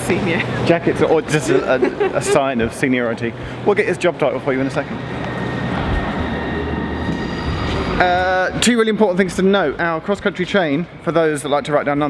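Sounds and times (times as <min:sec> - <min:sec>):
diesel train engines idling: 0:00.0 - 0:12.0
higher whine: 0:00.0 - 0:12.0
thin high whine: 0:00.2 - 0:12.0.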